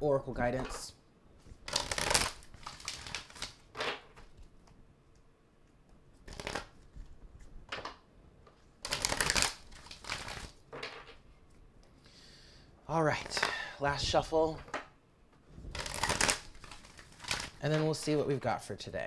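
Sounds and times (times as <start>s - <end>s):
cards being shuffled: 0.5s - 4.8s, 5.9s - 11.2s, 13.1s - 13.6s, 15.6s - 18.4s.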